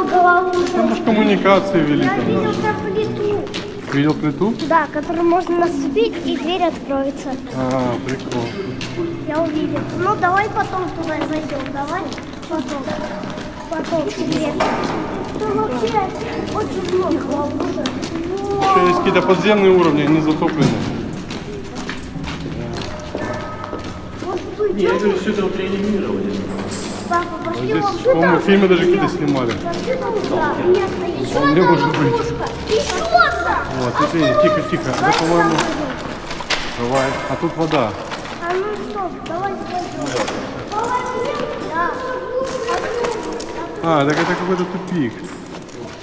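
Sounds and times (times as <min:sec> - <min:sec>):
faint voices: 0:00.0 - 0:44.2
footsteps on wet concrete: 0:00.0 - 0:46.0
people's wordless calls and tones: 0:00.0 - 0:46.0.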